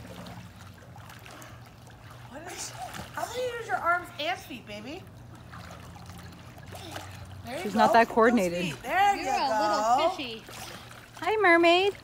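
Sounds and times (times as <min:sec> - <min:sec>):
low steady hum: 0:00.0 - 0:12.0
water splashing and lapping: 0:00.0 - 0:12.0.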